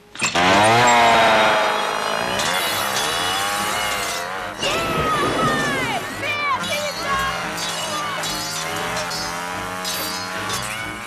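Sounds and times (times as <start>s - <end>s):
chainsaw revving: 0.0s - 11.0s.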